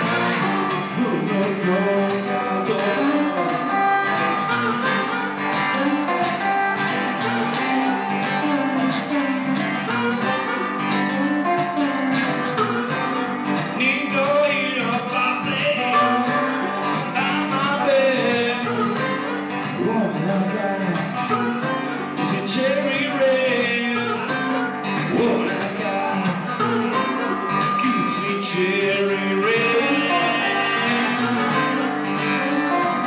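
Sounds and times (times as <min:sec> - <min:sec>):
electric guitar blues: 0:00.0 - 0:33.0
harmonica sustained notes: 0:00.0 - 0:33.0.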